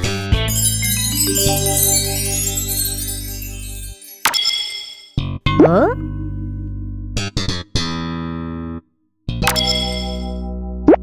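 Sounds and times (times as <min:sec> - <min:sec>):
cartoon soundtrack music: 0:00.5 - 0:04.1.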